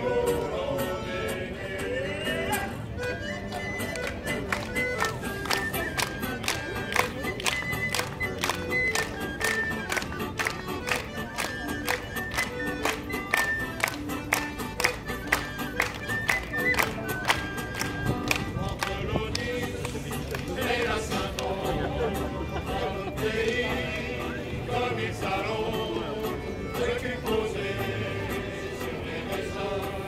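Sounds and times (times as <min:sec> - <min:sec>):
group singing sailors' song: 0:00.0 - 0:02.9, 0:18.3 - 0:30.0
acoustic guitar: 0:00.0 - 0:30.0.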